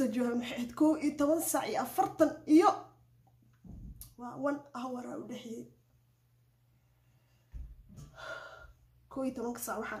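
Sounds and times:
woman speaking: 0.0 - 3.0, 4.0 - 5.8, 9.1 - 10.0
woman gasping: 8.0 - 8.8.

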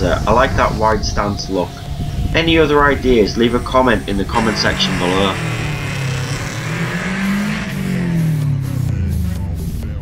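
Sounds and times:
car engine revving: 1.8 - 10.0
music with a beat: 7.8 - 10.0.

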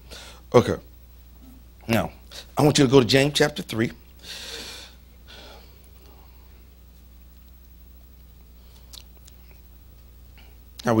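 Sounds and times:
low steady hum: 0.0 - 11.0
breaths close to microphone: 4.2 - 6.6.

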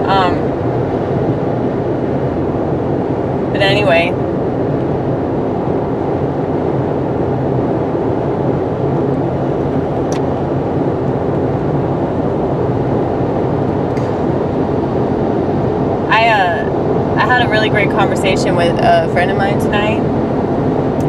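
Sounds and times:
car road and engine noise: 0.0 - 21.0.

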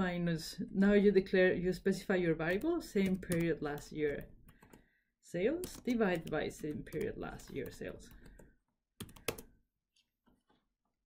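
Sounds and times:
computer keyboard typing: 2.5 - 4.8, 5.6 - 9.5.

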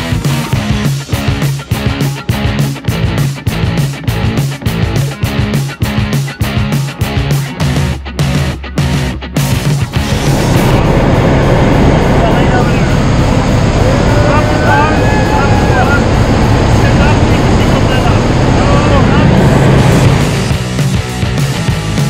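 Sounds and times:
rock music: 0.0 - 22.0
rushing air: 9.8 - 20.9
airplane cabin engine noise: 10.0 - 20.6.

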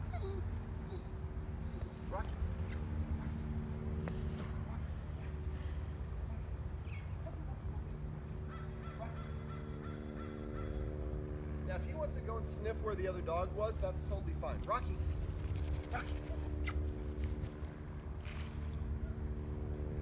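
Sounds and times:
low rumble of street traffic: 0.0 - 20.0.

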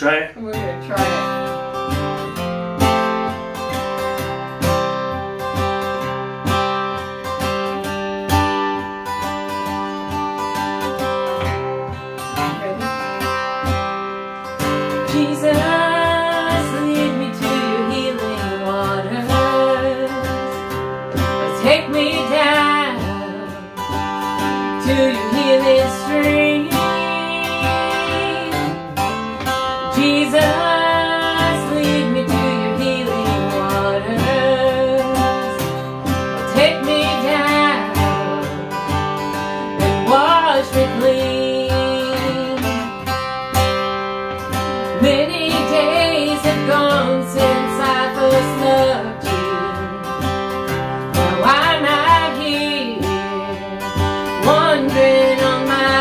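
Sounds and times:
acoustic guitar strumming: 0.0 - 56.0
man and woman singing: 15.0 - 20.4, 21.2 - 23.6, 24.7 - 29.1, 29.9 - 35.8, 36.5 - 38.2, 39.8 - 43.0, 45.0 - 50.0, 51.1 - 56.0.

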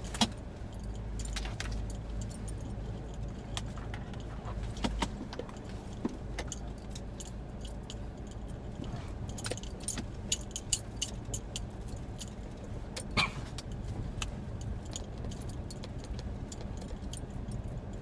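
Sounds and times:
engine rumble inside cab: 0.0 - 18.0
road noise: 0.0 - 18.0.

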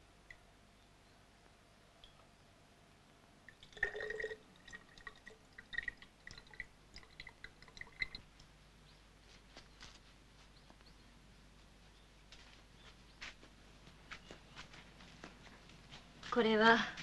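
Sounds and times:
water drips and plinks: 2.0 - 2.3, 3.5 - 8.5
water pouring into bamboo tube: 3.5 - 8.3.

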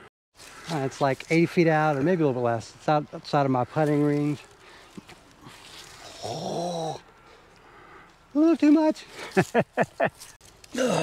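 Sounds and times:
man groaning: 6.1 - 7.0, 10.7 - 11.0.

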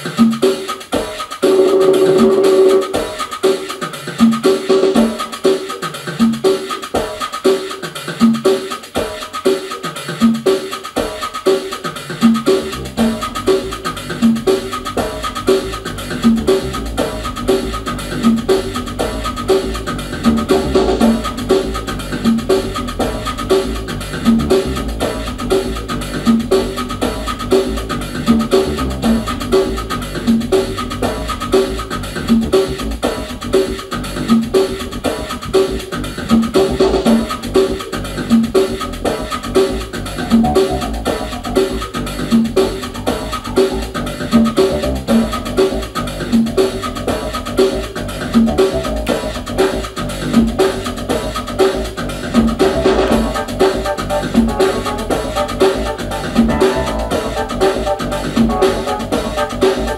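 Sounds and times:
electronic latin percussion groove: 0.0 - 59.9
low synth bass line: 52.1 - 59.9.

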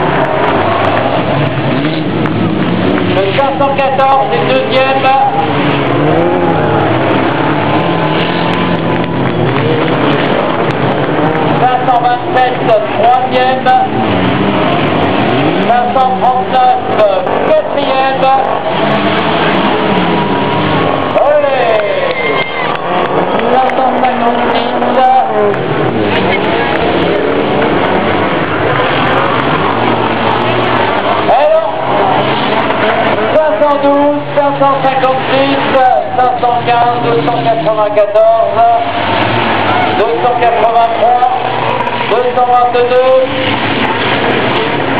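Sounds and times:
race car engines revving: 0.0 - 44.9.

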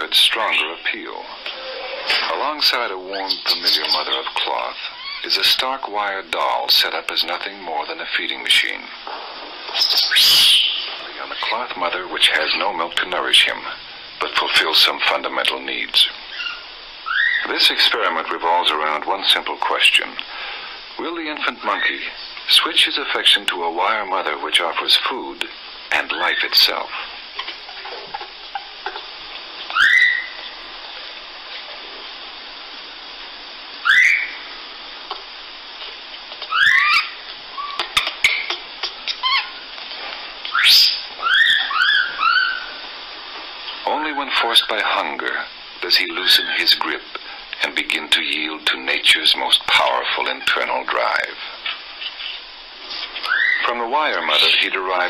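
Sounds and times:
steady hiss: 0.0 - 55.0
infant monkey crying: 4.8 - 5.3, 16.3 - 17.5, 27.4 - 30.4, 33.8 - 34.4, 36.5 - 39.7, 40.5 - 42.8, 53.2 - 53.6.

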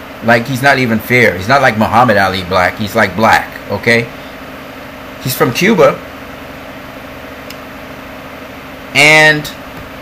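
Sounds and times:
room hum and hiss: 0.0 - 10.0
man speaking: 0.2 - 4.2, 5.2 - 6.1, 8.9 - 9.6.

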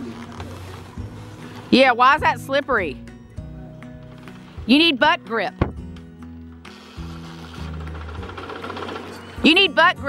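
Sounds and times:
background music: 0.0 - 10.0
dirt bike engine idling: 6.7 - 9.8.

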